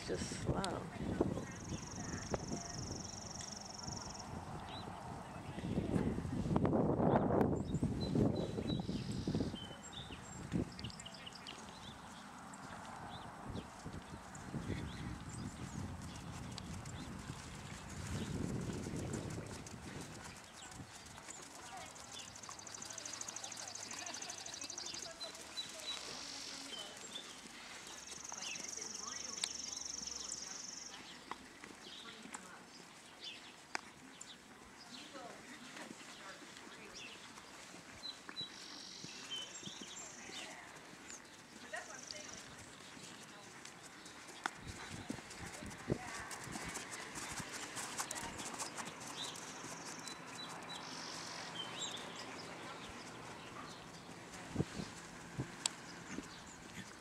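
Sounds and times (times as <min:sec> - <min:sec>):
horse hooves on sand: 0:07.4 - 0:57.0.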